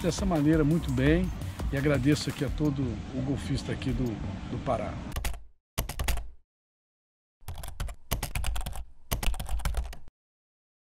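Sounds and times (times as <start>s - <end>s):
rapid keyboard typing clicks: 5.2s - 6.3s, 7.4s - 10.1s.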